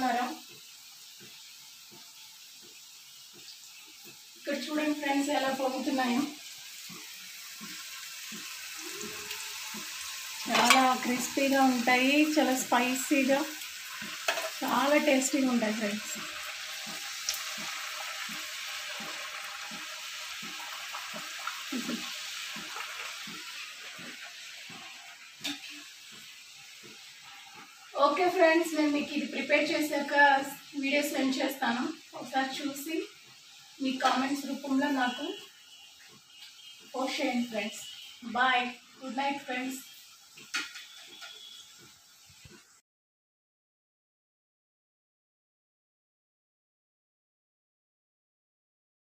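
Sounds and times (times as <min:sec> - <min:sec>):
food deep-frying in oil: 0:00.0 - 0:42.8.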